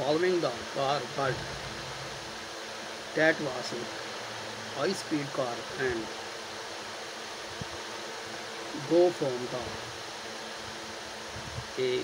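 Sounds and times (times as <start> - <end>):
man speaking: 0.0 - 1.7, 3.2 - 3.9, 4.8 - 6.1, 8.8 - 9.8, 11.8 - 12.0
faint low hum: 0.0 - 3.9
background hiss: 0.0 - 12.0.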